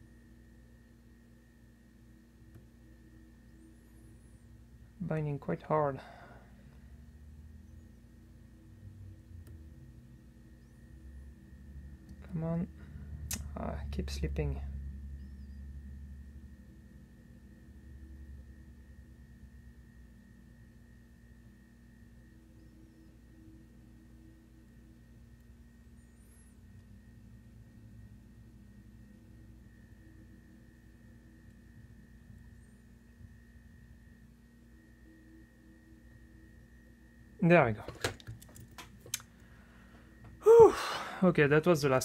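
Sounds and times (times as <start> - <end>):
faint electrical hum: 0.0 - 42.0.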